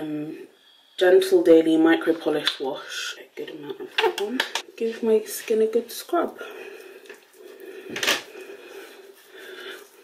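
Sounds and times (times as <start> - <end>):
hands rubbing wet face: 5.3 - 10.0.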